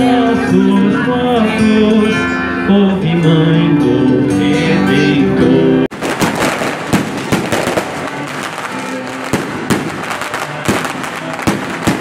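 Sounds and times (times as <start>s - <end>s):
fireworks bangs: 5.9s - 12.0s
fireworks crackling: 5.9s - 12.0s.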